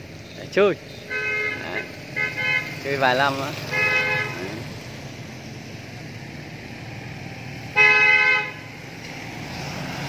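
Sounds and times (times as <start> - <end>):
street background noise: 0.0 - 10.0
vehicle horn toot: 0.9 - 2.8, 3.7 - 4.6, 7.8 - 8.7.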